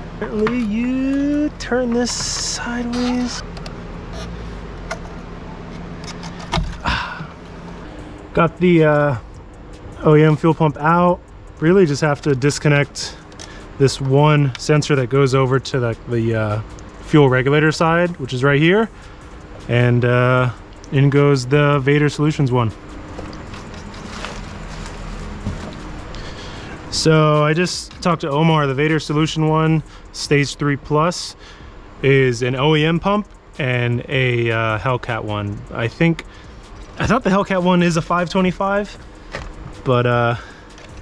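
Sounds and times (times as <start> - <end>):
light plastic rustling: 23.1 - 26.0.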